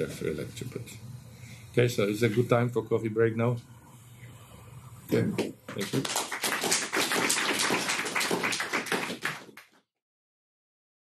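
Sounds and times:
audience applauding: 5.7s - 9.8s.

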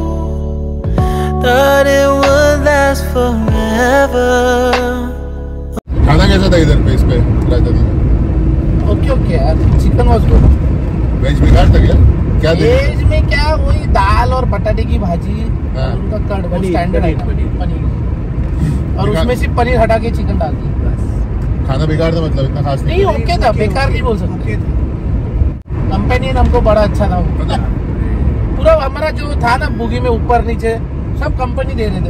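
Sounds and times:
car road and engine rumble: 0.0s - 32.0s
people talking: 6.0s - 7.9s, 11.2s - 17.9s, 18.6s - 21.1s, 21.7s - 24.6s.

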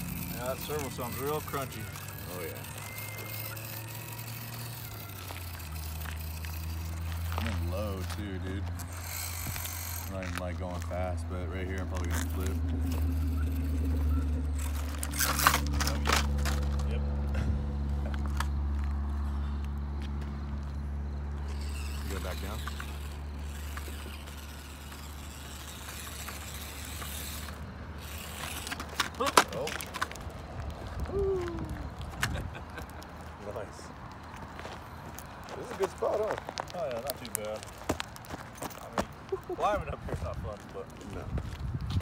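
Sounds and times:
small motor and gear drone: 0.0s - 38.8s
tires knocking and scraping dirt: 0.0s - 42.0s.

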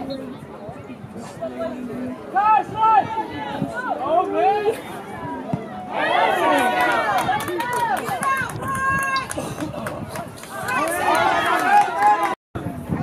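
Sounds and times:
voices shouting and calling out: 0.0s - 12.4s.

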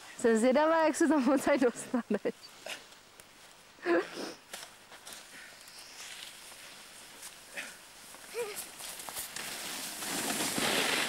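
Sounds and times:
snowboard scraping over snow: 8.7s - 11.0s.

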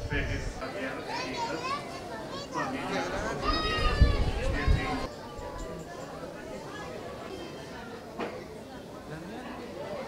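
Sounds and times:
children calling and chattering: 0.0s - 10.0s
crowd voices: 0.0s - 10.0s.

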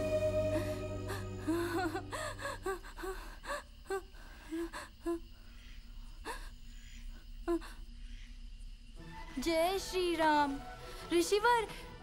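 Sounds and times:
held music chord: 0.0s - 2.5s
boy gasping and sobbing: 0.4s - 5.1s.

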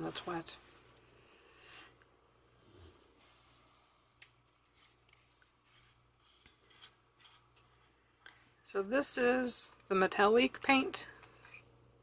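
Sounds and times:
hands rustling craft supplies: 3.2s - 8.6s.

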